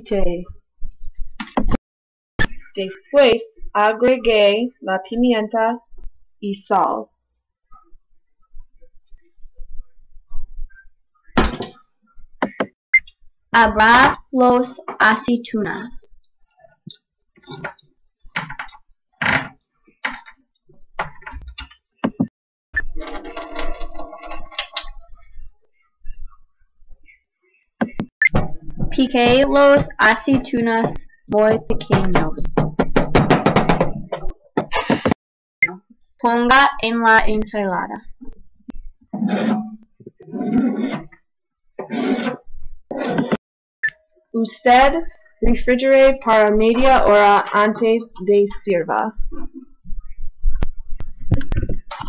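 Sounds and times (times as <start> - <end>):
scraping on plastic cutting board: 39.2 - 41.1, 41.8 - 43.4.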